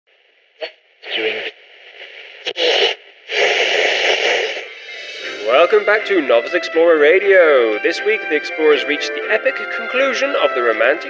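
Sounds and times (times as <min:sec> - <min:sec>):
radio static hiss: 0:00.2 - 0:07.7.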